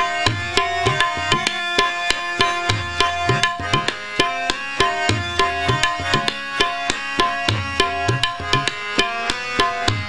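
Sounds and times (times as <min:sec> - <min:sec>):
harmonium sustained chords: 0:00.0 - 0:10.0
tabla playing steady rhythm: 0:00.0 - 0:10.0.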